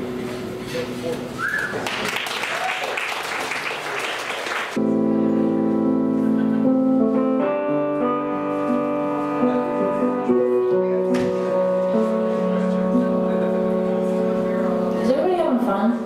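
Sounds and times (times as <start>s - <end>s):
audience applause: 1.5s - 4.8s
keyboard playing sustained chords: 4.8s - 16.0s.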